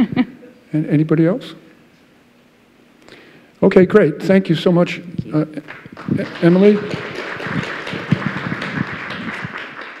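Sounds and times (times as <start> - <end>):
audience applauding: 5.7 - 10.0.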